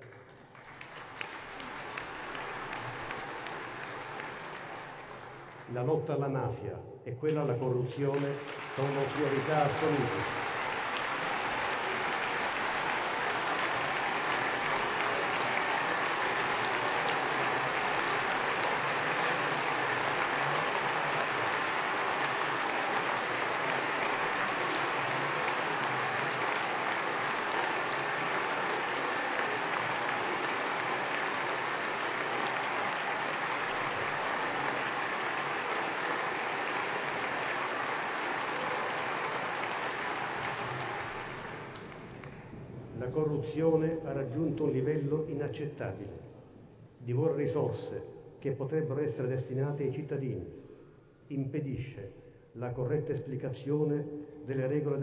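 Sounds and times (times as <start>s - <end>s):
crowd applause: 0.0s - 5.7s, 7.9s - 42.7s.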